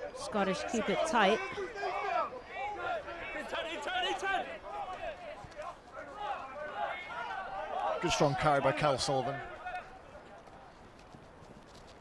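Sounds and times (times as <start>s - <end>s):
players shouting calls: 0.0s - 10.8s.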